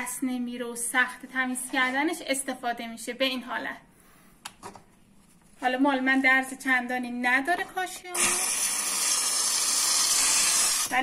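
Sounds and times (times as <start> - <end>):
steam cleaner hissing: 8.2 - 11.0.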